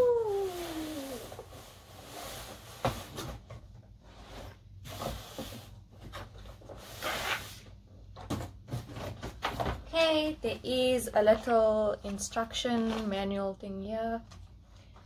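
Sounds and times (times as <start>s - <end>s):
cardboard rustling and scraping: 0.7s - 9.9s.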